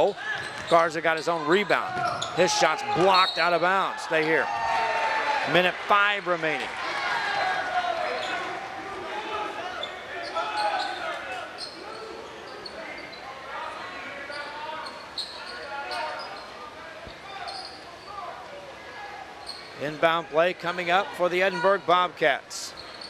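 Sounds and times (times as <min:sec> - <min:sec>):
sneakers squeaking on hardwood: 0:00.3 - 0:03.5, 0:09.7 - 0:13.2, 0:14.2 - 0:17.8, 0:19.4 - 0:19.8, 0:22.7 - 0:23.0.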